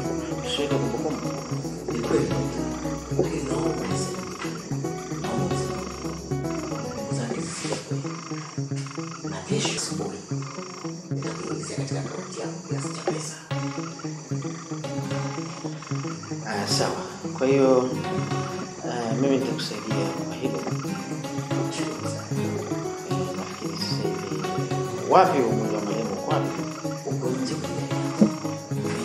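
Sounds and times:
synthesizer melodic pattern: 0:00.0 - 0:12.0, 0:13.5 - 0:29.0
percussive ticks: 0:00.4 - 0:05.2, 0:05.8 - 0:11.6, 0:28.1 - 0:29.0.

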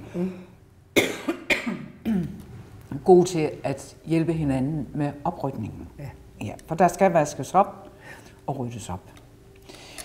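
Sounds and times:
woman coughing: 0:01.0 - 0:02.4.

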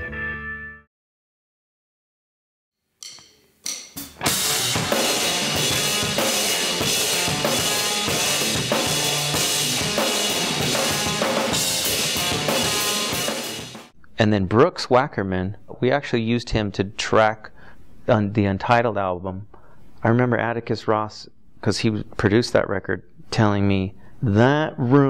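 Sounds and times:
rock drum kit played hard: 0:04.0 - 0:13.9.

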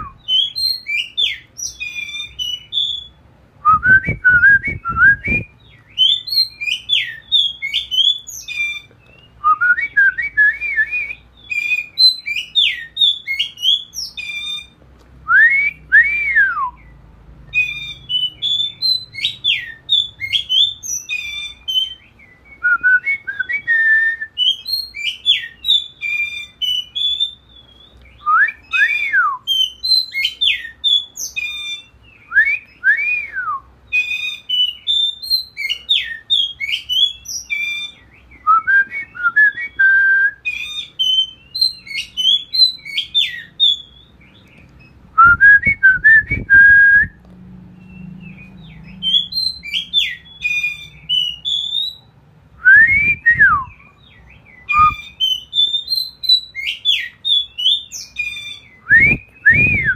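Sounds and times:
magpie-robin singing whistled song: 0:00.0 - 0:59.9.

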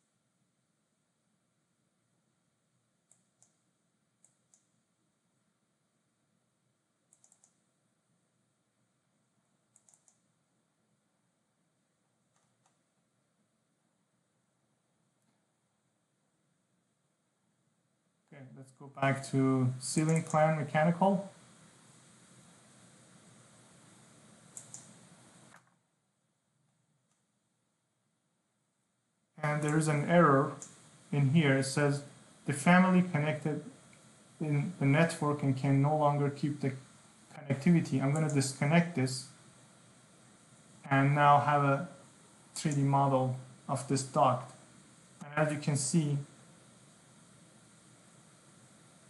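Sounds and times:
faint room hiss: 0:00.0 - 0:49.0
computer mouse clicks: 0:03.0 - 0:03.6, 0:04.2 - 0:04.8, 0:07.1 - 0:07.6, 0:09.7 - 0:10.3, 0:12.3 - 0:12.8, 0:20.0 - 0:20.6, 0:24.5 - 0:25.8, 0:27.1 - 0:27.3, 0:29.5 - 0:29.9, 0:30.5 - 0:30.9, 0:38.1 - 0:38.5.

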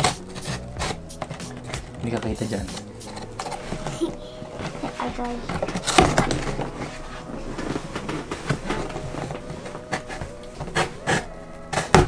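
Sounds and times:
cardboard packaging rustling: 0:00.0 - 0:12.0.

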